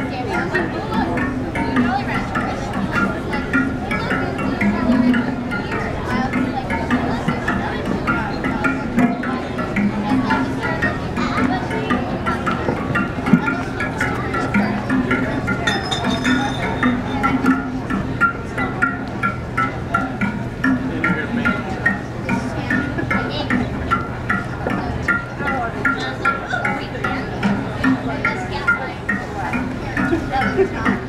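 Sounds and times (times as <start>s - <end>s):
wind machine droning tone: 0.0s - 31.0s.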